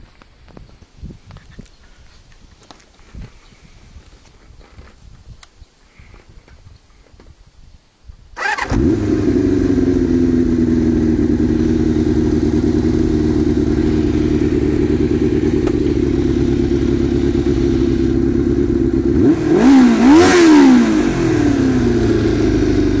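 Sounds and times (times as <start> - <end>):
motorcycle engine idling and revving: 8.4 - 23.0.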